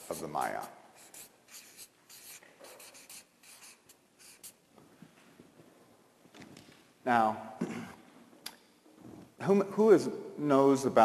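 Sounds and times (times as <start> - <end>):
marker pen scratching on paper: 0.0 - 4.6.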